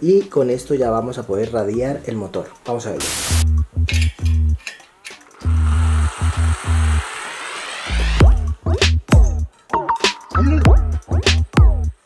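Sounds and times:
music with heavy bass beat: 3.0 - 4.6, 7.6 - 12.0
rising sweep: 5.4 - 8.5.

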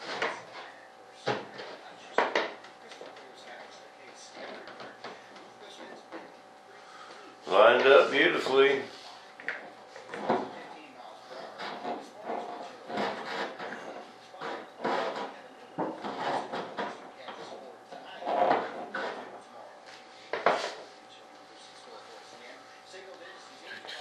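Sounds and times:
tube scraping in fiberglass hole: 11.4 - 17.6, 18.2 - 19.4.

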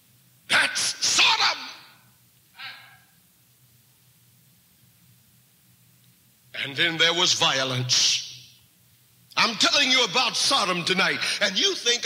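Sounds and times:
faint low hum: 0.0 - 12.0
person breathing: 2.6 - 3.2.

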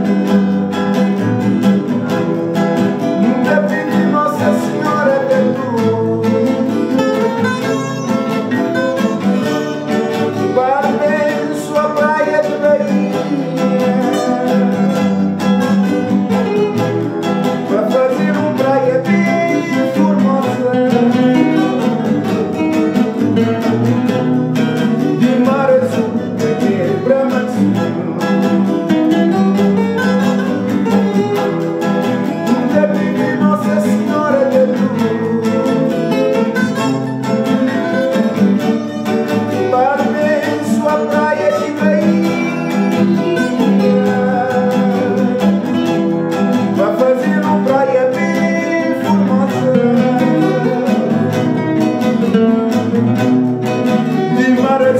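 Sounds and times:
acoustic guitars strumming: 0.0 - 54.9
man singing: 0.0 - 54.9
mandolin-style string instrument: 6.0 - 19.0.

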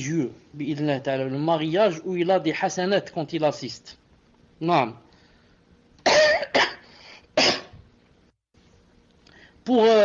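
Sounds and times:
person coughing: 6.0 - 7.8.

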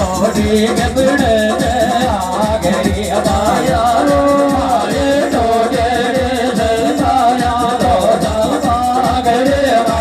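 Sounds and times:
quick steady drum beat: 0.0 - 10.0.

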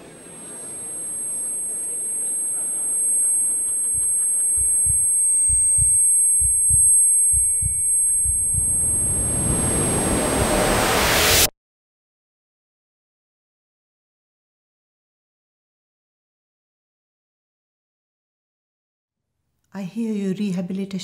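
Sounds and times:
high-pitched ringing tone: 0.0 - 11.5
deep low thuds: 3.9 - 10.7
rush of noise: 7.7 - 11.5.

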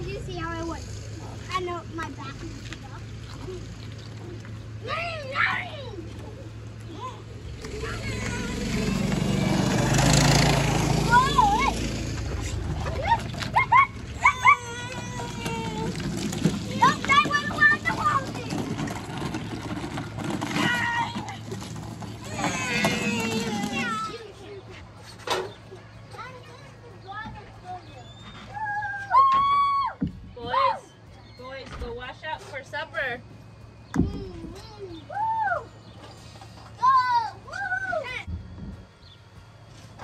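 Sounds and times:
children's high-pitched voices: 0.0 - 9.2, 10.9 - 12.0, 12.8 - 18.9, 22.2 - 25.0, 25.6 - 30.9, 36.8 - 38.3
wheels rumbling on wet concrete: 0.0 - 28.3
low steady hum: 0.0 - 40.0
child calling out: 7.8 - 8.9, 14.2 - 15.9.

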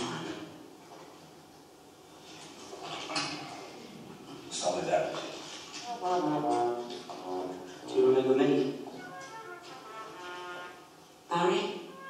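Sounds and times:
brass band holding chords: 8.9 - 12.0.

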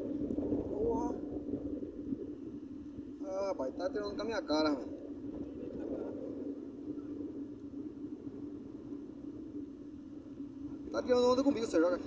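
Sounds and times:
faint even hum: 0.0 - 12.0
low outdoor rumble: 0.0 - 12.0.

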